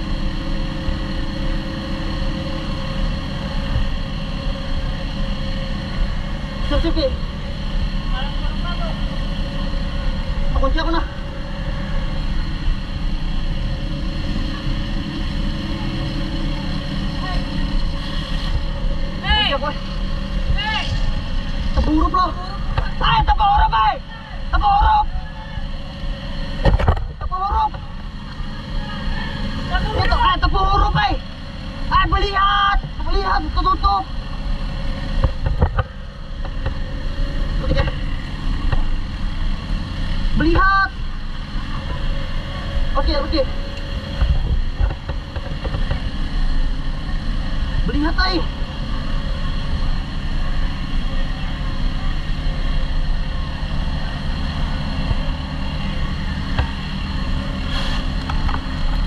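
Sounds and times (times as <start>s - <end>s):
motor droning: 0.0s - 59.0s
steady hum: 0.0s - 59.0s
people shouting: 20.5s - 21.1s, 22.9s - 25.8s.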